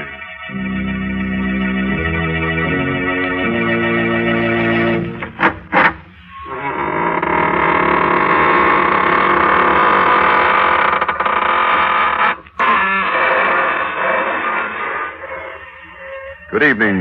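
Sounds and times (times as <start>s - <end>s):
door creaking slowly open: 2.6s - 17.0s.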